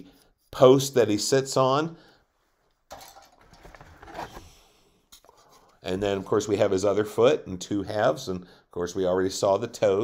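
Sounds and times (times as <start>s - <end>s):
plastic sprues clattering: 2.9s - 4.5s.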